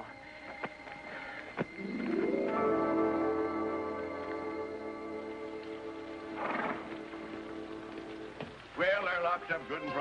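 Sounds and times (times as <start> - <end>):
orchestral chord: 1.7 - 7.9
horse whinny: 6.4 - 6.9.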